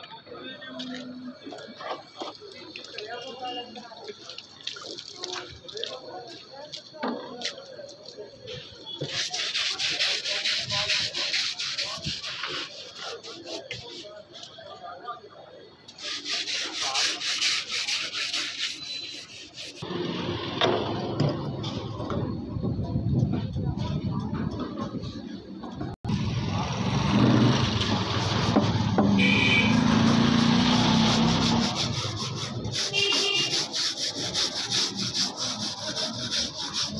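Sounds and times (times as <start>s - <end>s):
scrubbing on radiator fins: 29.6s - 36.9s.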